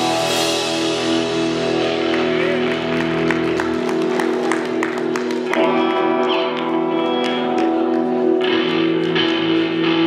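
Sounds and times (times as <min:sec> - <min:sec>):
electric guitar chords: 0:00.0 - 0:10.0.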